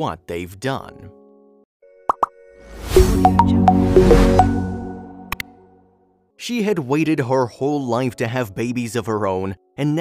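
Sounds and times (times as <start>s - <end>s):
held synth chord: 1.9s - 6.0s
intro music: 2.4s - 5.9s.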